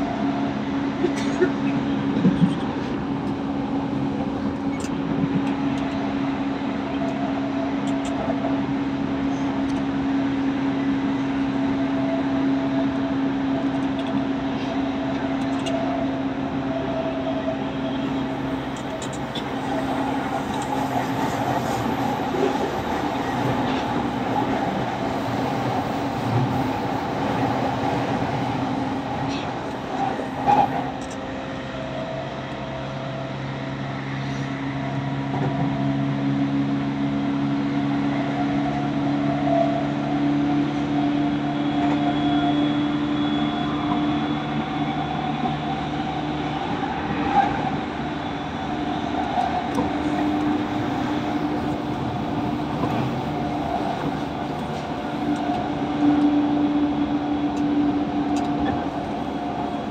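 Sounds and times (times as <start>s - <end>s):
rolling wheel and rail noise: 0.0s - 59.9s
train electric traction hum: 0.0s - 59.9s.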